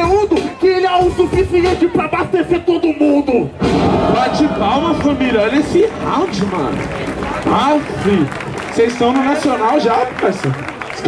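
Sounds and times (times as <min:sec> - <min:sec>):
man rapping into a microphone: 0:00.0 - 0:03.5.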